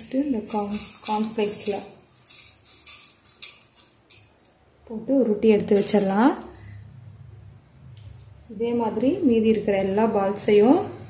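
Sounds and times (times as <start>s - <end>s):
cornflakes crackling and rustling: 0.0s - 4.5s.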